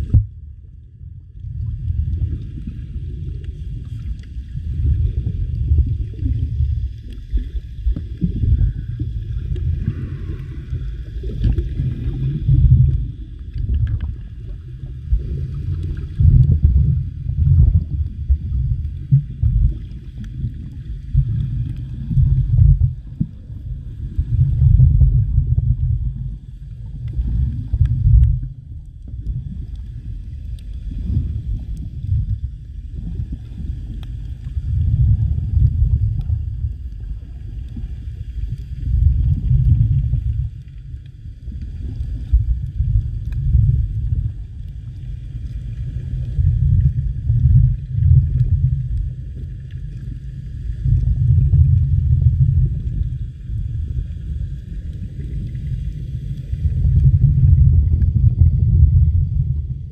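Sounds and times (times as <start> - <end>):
underwater water rumble: 0.0 - 59.9.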